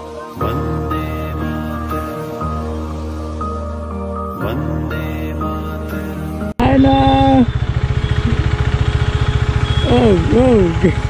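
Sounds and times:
motorcycle engine at low revs: 0:06.6 - 0:11.0.

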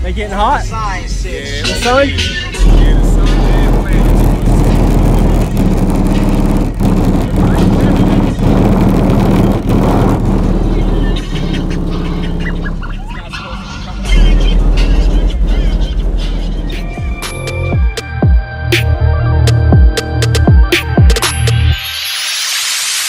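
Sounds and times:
bass-heavy music from car subwoofers: 0:01.3 - 0:22.2.

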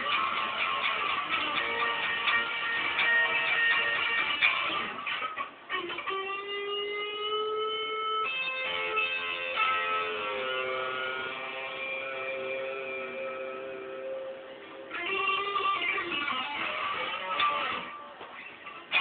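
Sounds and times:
electric guitar sustained notes: 0:00.0 - 0:19.0.

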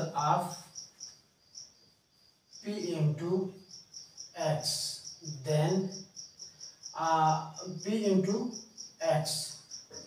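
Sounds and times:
man speaking: 0:00.0 - 0:00.7, 0:02.6 - 0:03.5, 0:04.4 - 0:06.0, 0:07.0 - 0:09.6
high-pitched insect chirping: 0:00.0 - 0:10.0.

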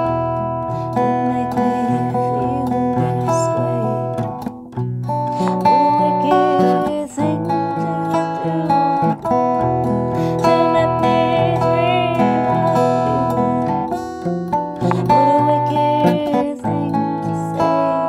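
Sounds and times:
acoustic guitar chords: 0:00.0 - 0:18.0
woman singing: 0:00.7 - 0:04.5, 0:05.3 - 0:14.1, 0:14.8 - 0:18.0.

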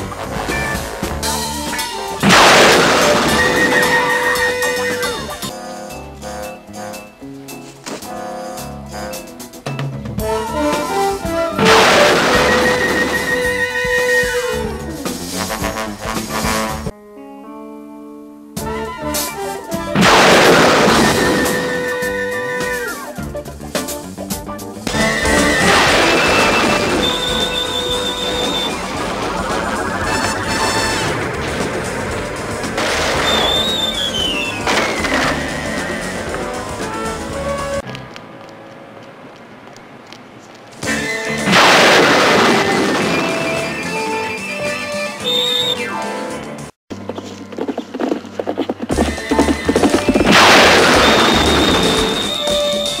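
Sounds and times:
loud burst of noise: 0:01.2 - 0:05.5, 0:11.6 - 0:13.8, 0:20.0 - 0:22.4, 0:24.9 - 0:37.5, 0:40.9 - 0:44.0, 0:50.0 - 0:53.0
music cue: 0:16.9 - 0:38.0.

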